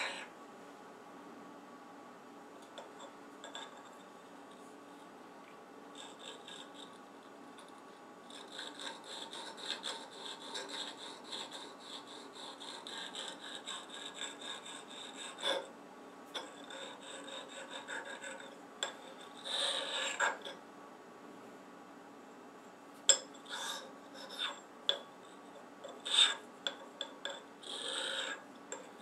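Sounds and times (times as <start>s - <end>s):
hand file scraping steel: 0.0s - 0.3s, 6.0s - 7.0s, 8.3s - 15.7s, 16.4s - 20.6s, 23.5s - 24.6s, 25.8s - 29.0s.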